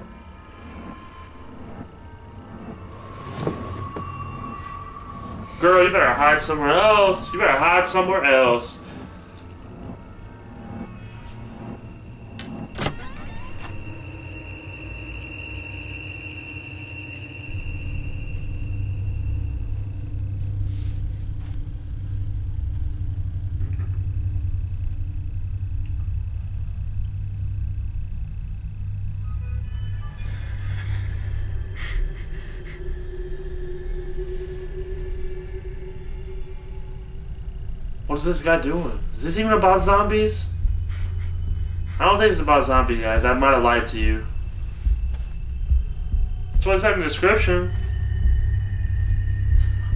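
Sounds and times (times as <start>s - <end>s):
long held tones: 0.0s - 49.9s
low rumbling drone: 0.0s - 49.9s.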